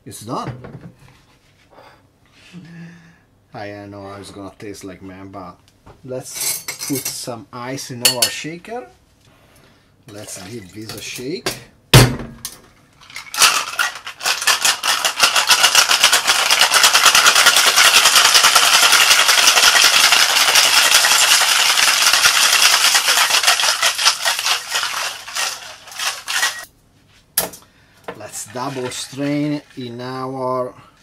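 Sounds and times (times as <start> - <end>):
ice rattling in cocktail shaker: 13.0 - 26.7, 28.3 - 30.3.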